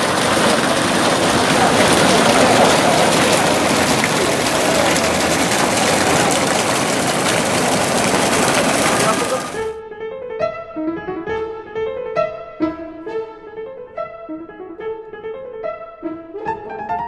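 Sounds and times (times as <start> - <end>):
fountain water splashing into pool: 0.0 - 9.8.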